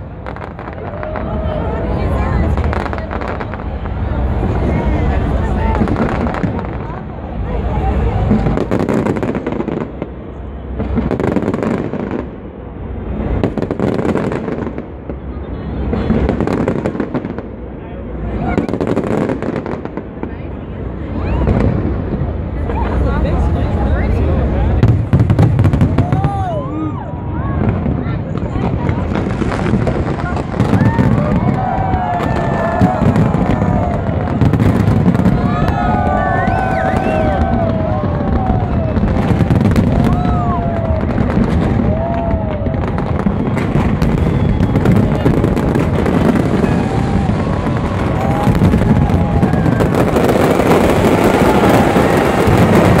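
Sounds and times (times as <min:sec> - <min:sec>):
fireworks crackling and popping: 0:00.0 - 0:53.0.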